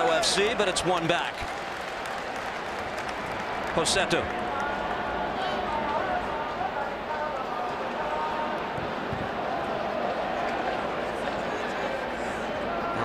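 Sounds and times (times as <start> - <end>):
stadium crowd din: 0.0 - 13.0.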